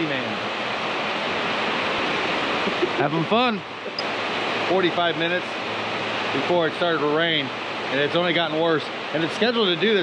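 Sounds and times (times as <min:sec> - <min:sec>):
heavy rain pouring: 0:00.0 - 0:10.0.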